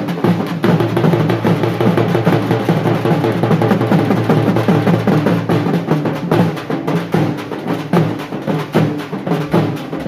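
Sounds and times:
large drums beaten with sticks: 0.0s - 10.0s.

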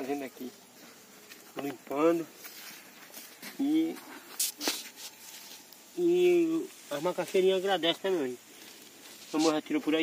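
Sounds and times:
weeds ripping from wet soil: 2.4s - 10.0s.

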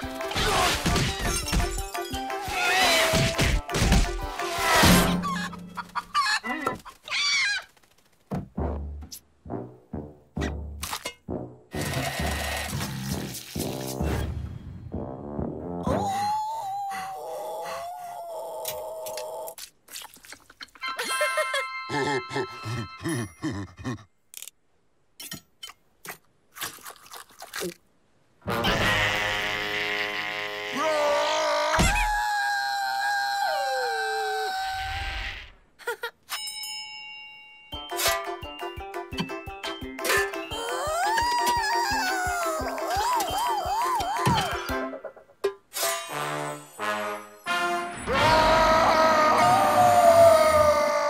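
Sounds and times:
cartoon background music: 0.0s - 5.8s, 8.5s - 16.4s, 28.4s - 30.8s, 37.8s - 45.4s, 46.0s - 50.9s
cartoon hyena howling in pain: 15.9s - 19.6s, 30.7s - 35.4s, 40.5s - 44.5s, 48.1s - 51.0s.

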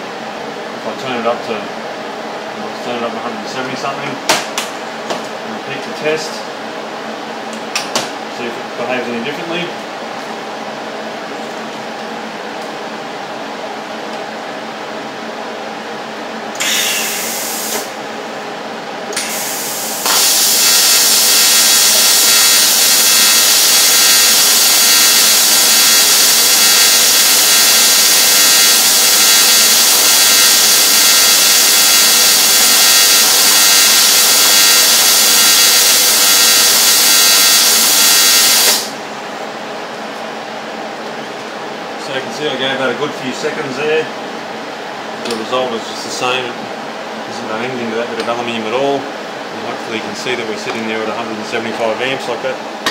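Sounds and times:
welding machine hum: 16.5s - 18.0s, 19.1s - 39.1s
welding arc buzzing hiss: 16.5s - 18.1s, 19.1s - 39.1s
arc sputters: 20.2s - 38.9s.

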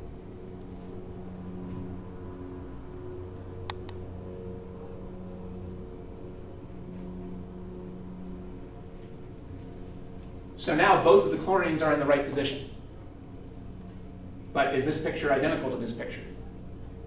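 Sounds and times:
low mechanical room hum: 0.0s - 17.0s.

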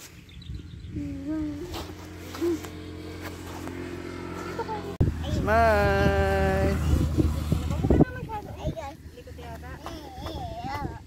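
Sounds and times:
steady low rumble: 0.4s - 11.0s.

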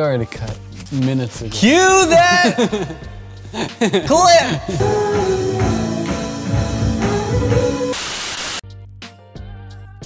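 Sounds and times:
background music: 0.0s - 10.0s
loud tv static burst: 8.0s - 8.6s.

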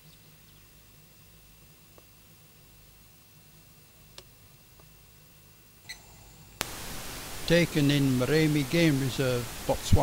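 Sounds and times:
faint low hum: 0.0s - 10.0s
steady hiss: 0.0s - 10.0s.

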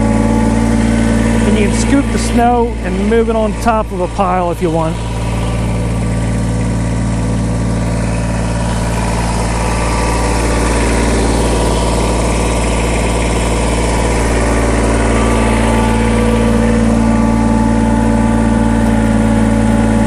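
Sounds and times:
diesel tractor engine idling: 0.0s - 20.0s.

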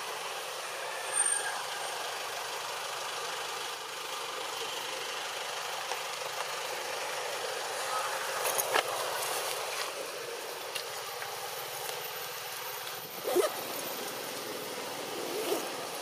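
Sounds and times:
outdoor background hiss: 0.0s - 16.0s.

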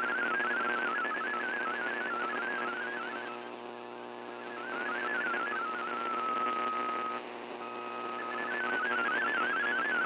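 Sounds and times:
digital signal tone hopping: 0.0s - 3.5s, 4.3s - 10.0s
static hiss: 0.0s - 10.0s.

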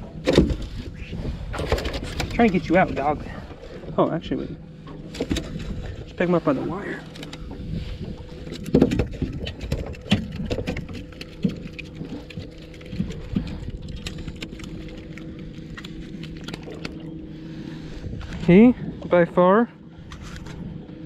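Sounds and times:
steady low hum: 0.0s - 21.0s
clicks and knocks of fishing tackle: 8.4s - 17.0s.

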